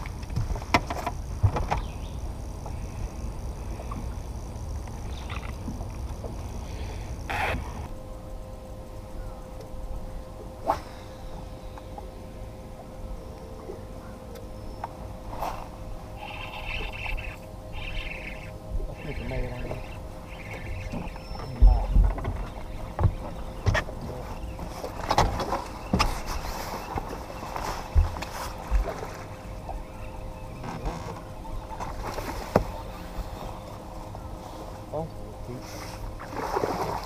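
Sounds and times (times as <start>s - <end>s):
faint steady whine: 0.0s - 37.0s
knocks and thuds on boat: 0.2s - 2.0s, 20.8s - 29.8s, 30.6s - 32.8s
waves lapping against hull: 15.2s - 37.0s.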